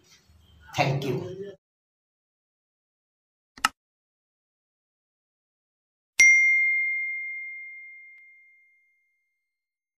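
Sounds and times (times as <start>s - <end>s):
bell ding: 6.2s - 9.2s.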